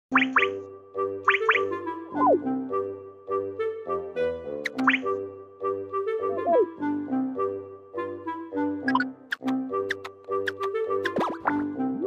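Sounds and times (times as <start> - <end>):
bouncy cartoon background music: 0.1 - 12.0.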